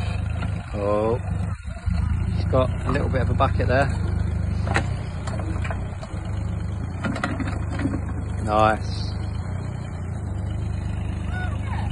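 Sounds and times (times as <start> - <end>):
diesel engine running: 0.0 - 11.9.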